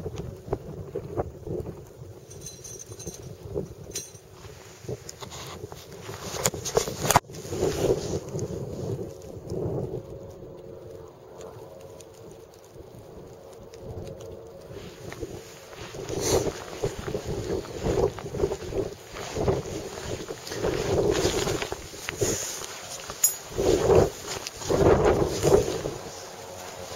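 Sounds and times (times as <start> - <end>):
wind noise on microphone: 0.0 - 26.9.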